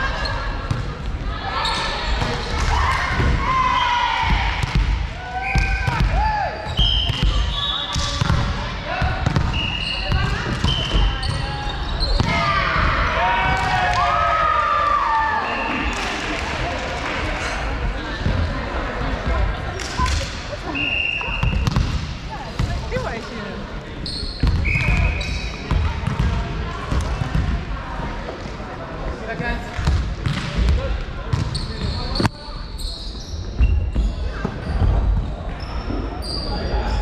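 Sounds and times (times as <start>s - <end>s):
indistinct chatter echoing: 0.0s - 32.8s
sneaker squeaks: 1.6s - 2.7s, 5.4s - 8.4s, 9.3s - 12.3s, 24.0s - 26.2s, 31.3s - 37.0s.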